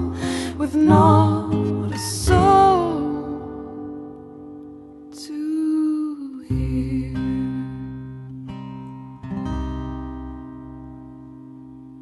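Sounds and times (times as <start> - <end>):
acoustic guitar strumming: 0.0 - 5.2, 6.5 - 12.0.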